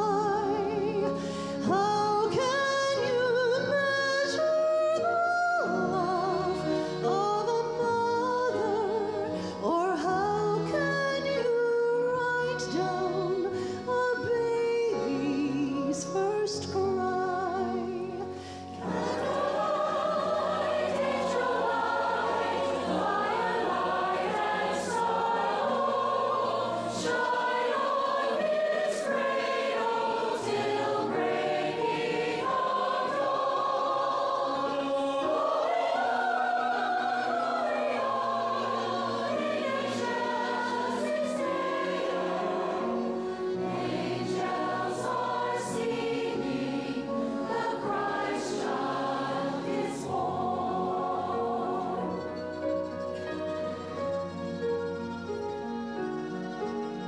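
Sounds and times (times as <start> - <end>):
choir singing with orchestra: 0.0 - 57.0.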